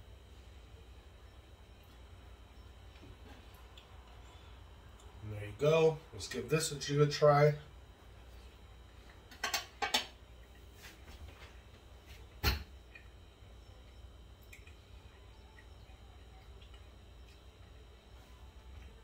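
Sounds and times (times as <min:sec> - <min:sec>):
cutlery clinking on a plate: 0:09.3 - 0:10.1.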